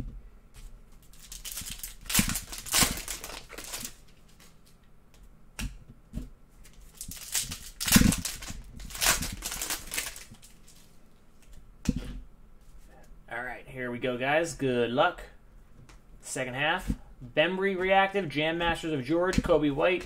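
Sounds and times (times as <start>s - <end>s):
foil wrappers tearing and crinkling: 1.1s - 4.5s, 6.8s - 10.9s.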